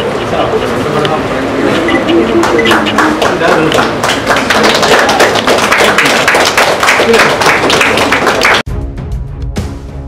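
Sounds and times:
small group applauding: 0:02.3 - 0:08.6.

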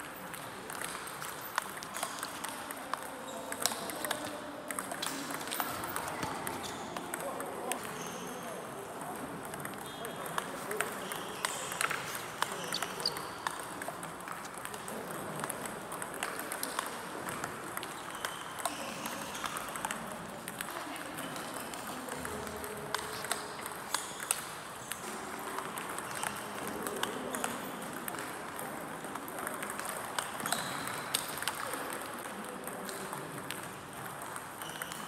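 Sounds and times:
table tennis ball clicking: 0:00.3 - 0:35.0.

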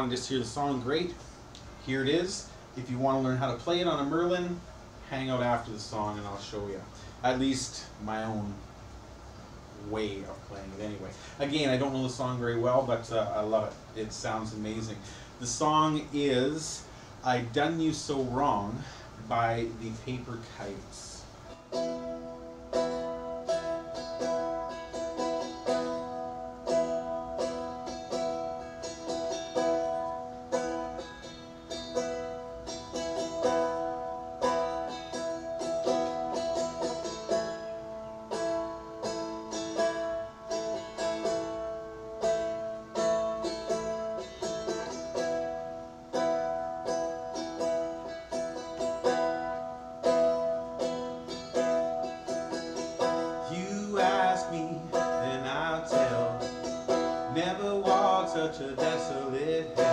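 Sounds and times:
fretted string instrument strummed: 0:10.5 - 0:59.9.

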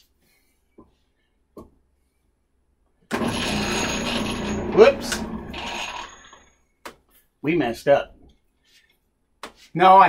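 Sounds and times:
sander motor winding down: 0:03.2 - 0:06.4.

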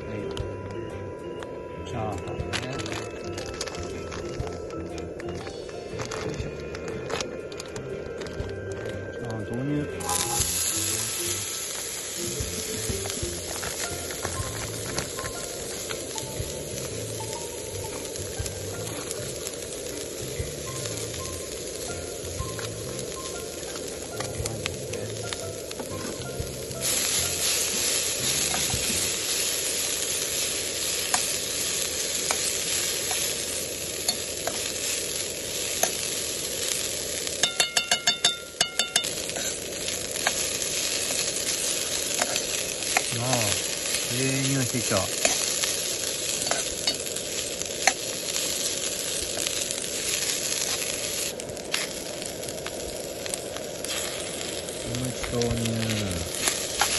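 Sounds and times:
fried rice sizzling in a pan: 0:02.7 - 0:56.9.

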